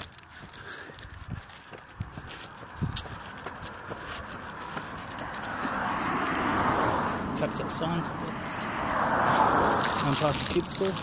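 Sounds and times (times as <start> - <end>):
footsteps on a footpath: 0.0 - 11.0
passing traffic: 0.0 - 11.0.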